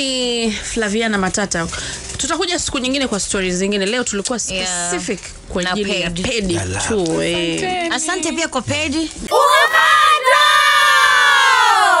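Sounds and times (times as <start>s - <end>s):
group of voices shouting together: 9.3s - 12.0s.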